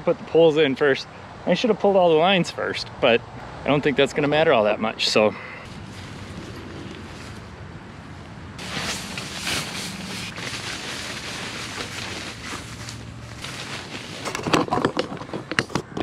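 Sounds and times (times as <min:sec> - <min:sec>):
low engine hum: 0:05.7 - 0:14.3.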